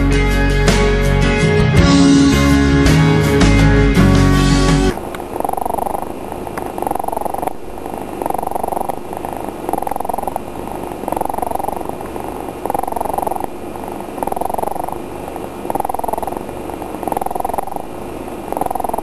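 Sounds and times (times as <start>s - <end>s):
cat purring: 4.9s - 19.0s.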